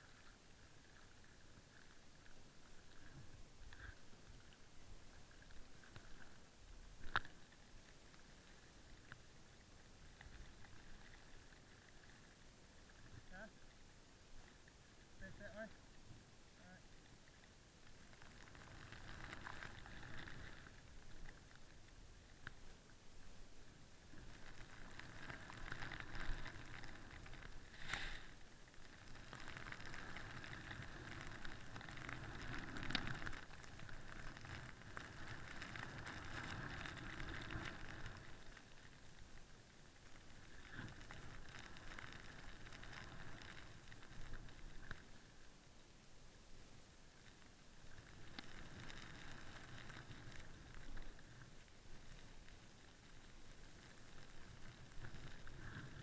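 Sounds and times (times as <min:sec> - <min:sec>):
snowboard hissing through snow: 0:27.7 - 0:28.3.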